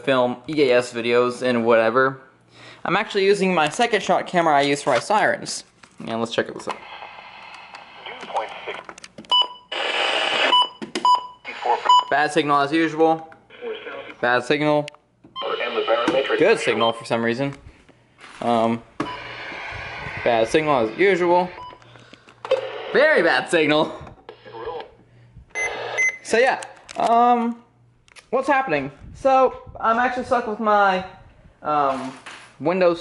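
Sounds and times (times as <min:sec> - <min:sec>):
radio static hiss: 0:06.7 - 0:08.9, 0:11.5 - 0:11.9, 0:15.4 - 0:16.8, 0:18.5 - 0:21.6, 0:24.3 - 0:25.0
radio key beeps: 0:15.4 - 0:17.0.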